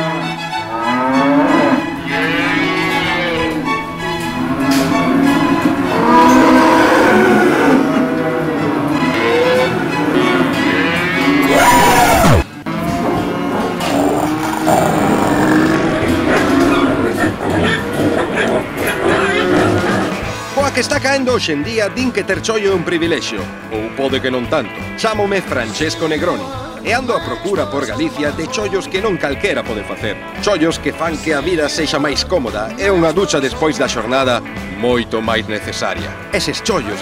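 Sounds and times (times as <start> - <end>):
cows mooing: 0.0 - 20.4
orchestral string music: 0.0 - 37.0.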